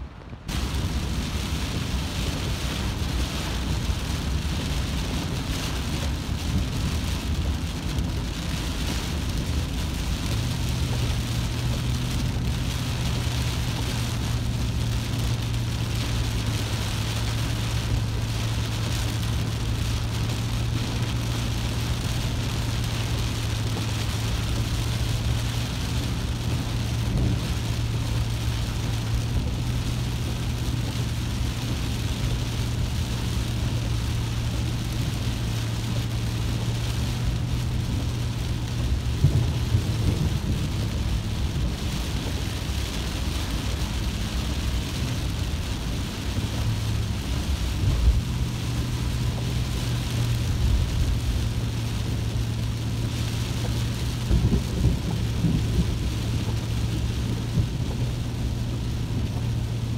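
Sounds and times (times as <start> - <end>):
engine and road noise: 0.0 - 59.9
heavy rain on vehicle roof: 0.0 - 59.9.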